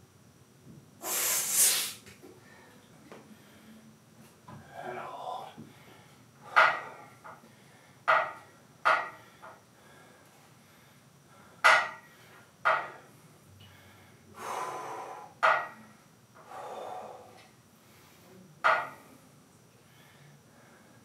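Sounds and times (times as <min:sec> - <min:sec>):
man's forceful breaths: 0:04.6 - 0:13.0, 0:13.6 - 0:15.7, 0:16.4 - 0:18.2.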